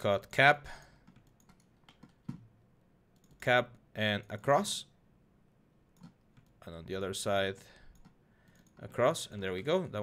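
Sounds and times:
keyboard and mouse clicks: 1.0s - 2.5s, 3.1s - 3.5s, 5.9s - 6.6s, 7.8s - 9.0s.

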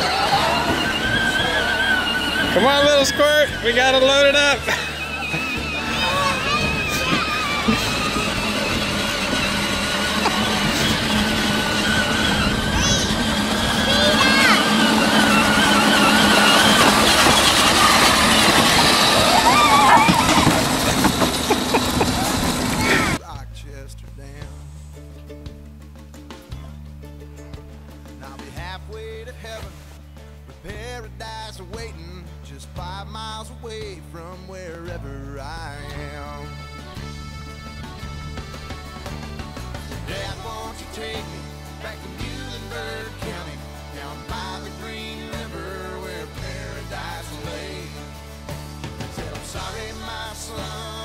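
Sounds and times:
loud rough noise: 0.0s - 23.2s, 35.4s - 51.0s
toy ride-on vehicle running: 0.0s - 23.2s, 35.4s - 51.0s
voices: 0.0s - 24.2s, 34.6s - 48.3s, 49.0s - 51.0s
country music with acoustic guitar: 0.0s - 51.0s.

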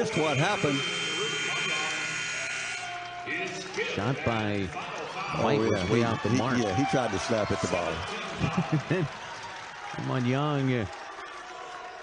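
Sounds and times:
basketball game arena sound: 0.0s - 12.0s.

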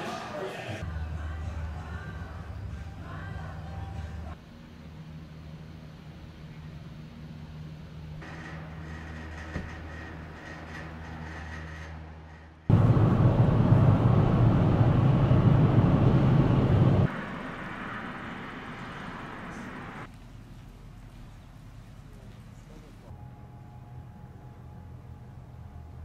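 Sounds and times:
road and engine rumble in car: 12.7s - 21.9s
chairlift drive station hum: 12.7s - 22.6s.

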